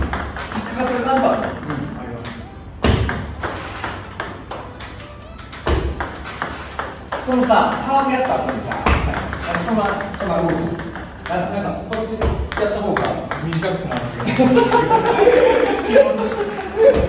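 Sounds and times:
table tennis ball ticking: 0.0 - 17.0.

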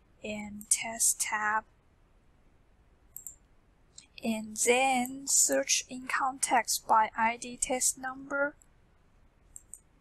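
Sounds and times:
computer mouse click: 3.1 - 4.1, 9.5 - 9.9.

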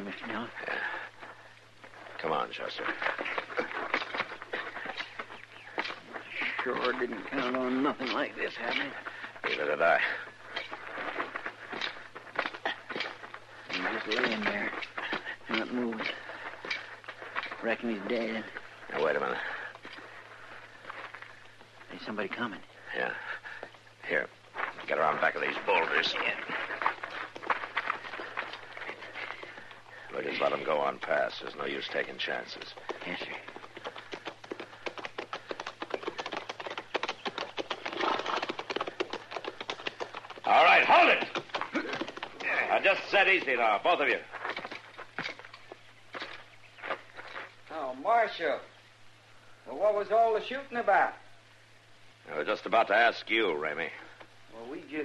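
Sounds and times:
horses' hoofbeats clip-clopping: 0.0 - 47.7
recording hiss: 0.0 - 55.0
footsteps crunching on gravel: 0.8 - 22.2, 23.0 - 47.7.

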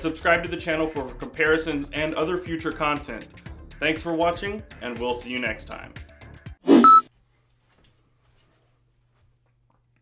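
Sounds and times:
steady high beep: 6.7 - 7.0.

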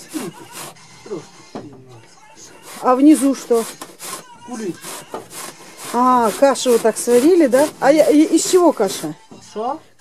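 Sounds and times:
grater rasping scrape: 0.0 - 0.8, 2.4 - 9.2.

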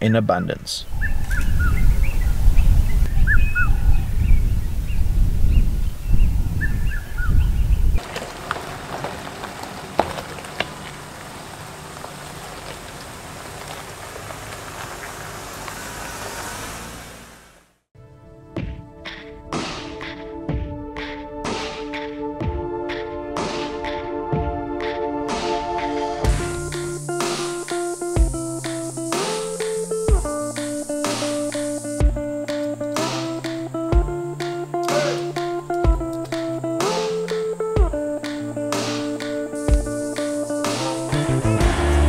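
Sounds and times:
birds chirping: 0.0 - 16.8, 26.2 - 42.0
wind buffeting microphone: 0.8 - 8.0
music with sustained tones: 18.0 - 42.0
steady hiss: 26.3 - 42.0.

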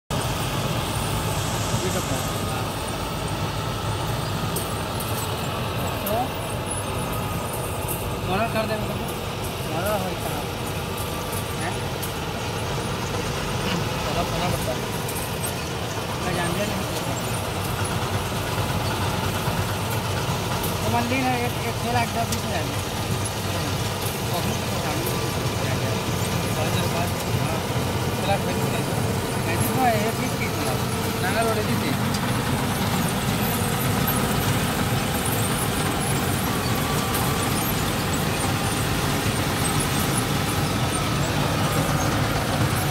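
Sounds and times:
tractor diesel engine running: 0.0 - 42.9.

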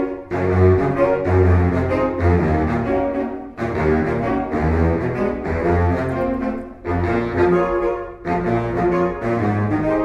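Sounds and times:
saxophone ensemble playing: 0.0 - 10.0.

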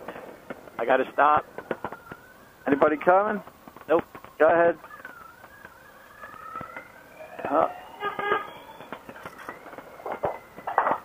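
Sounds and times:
motorcycle engine whine: 0.0 - 11.0.

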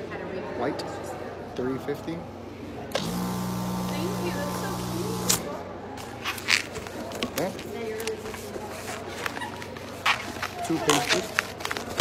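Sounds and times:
electric balloon inflator humming: 2.9 - 5.6.

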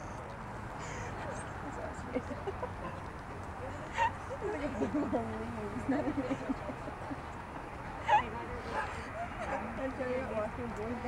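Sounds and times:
people talking: 1.2 - 7.2, 8.1 - 11.0.

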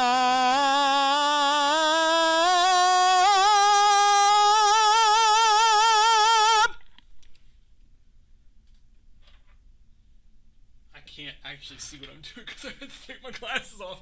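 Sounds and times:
tenor singing with vibrato: 0.0 - 6.8.

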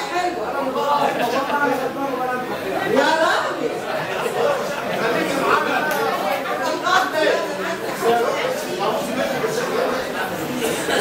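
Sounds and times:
people talking and laughing: 0.0 - 11.0.

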